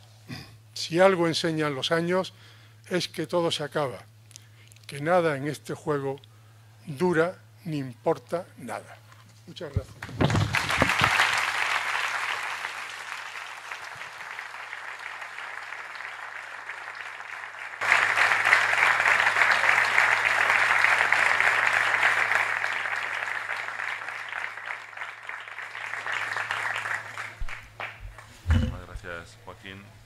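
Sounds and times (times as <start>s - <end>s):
audience applauding: 10.0s - 29.0s
steady low hum: 27.4s - 30.0s.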